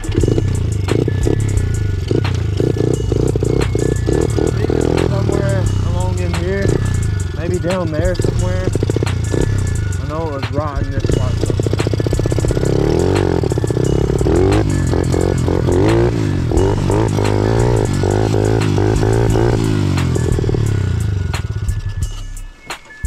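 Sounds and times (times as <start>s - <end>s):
small motorbike engine revving: 0.0s - 21.9s.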